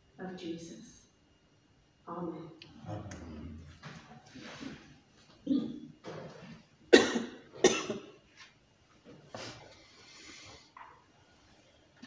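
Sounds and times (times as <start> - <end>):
person coughing: 5.4 - 5.8, 6.9 - 8.2.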